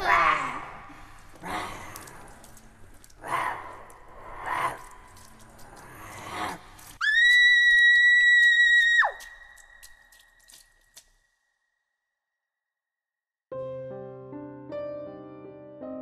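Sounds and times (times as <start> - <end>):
piercing high scream: 7.0 - 9.6.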